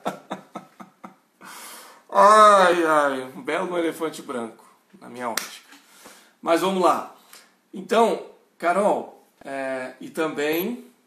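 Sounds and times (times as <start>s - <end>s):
man laughing: 0.0s - 1.3s.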